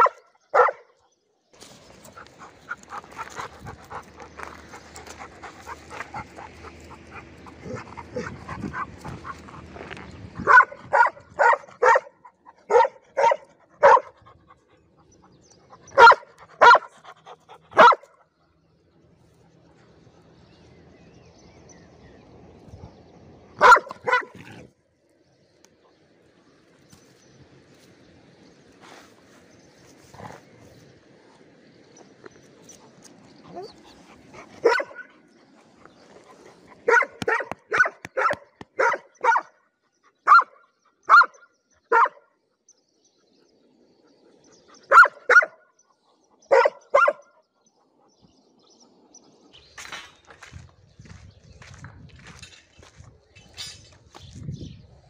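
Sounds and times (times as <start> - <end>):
dog barking: 0.0 - 0.9, 10.4 - 14.2, 15.9 - 16.9, 17.8 - 18.2, 23.6 - 24.6, 34.6 - 35.1, 36.8 - 39.5, 40.3 - 42.3, 44.9 - 45.6, 46.5 - 47.3.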